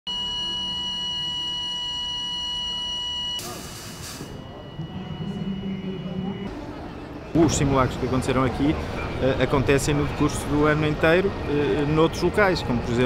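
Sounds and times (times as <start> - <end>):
fire alarm high-pitched tone: 0.1 - 6.5
brief hiss: 3.4 - 4.4
low steady hum: 4.3 - 7.4.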